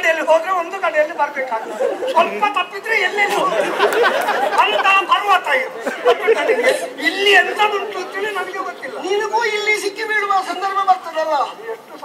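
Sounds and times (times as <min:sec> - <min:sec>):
actors talking: 0:00.0 - 0:12.0.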